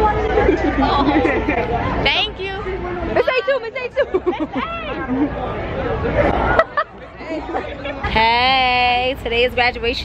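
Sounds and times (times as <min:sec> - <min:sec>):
crowd chatter: 0:00.0 - 0:10.0
people talking close by: 0:00.0 - 0:10.0.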